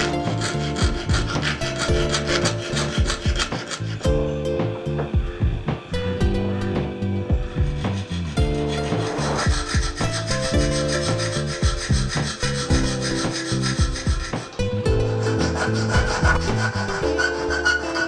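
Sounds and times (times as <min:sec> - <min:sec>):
hand file rasping on steel: 0:00.0 - 0:05.1, 0:07.5 - 0:18.0
background music: 0:00.0 - 0:18.0.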